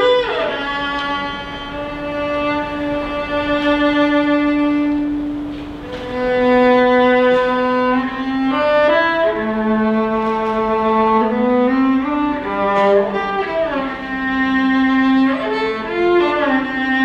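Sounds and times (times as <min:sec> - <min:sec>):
bowed cello melody: 0:00.0 - 0:17.0.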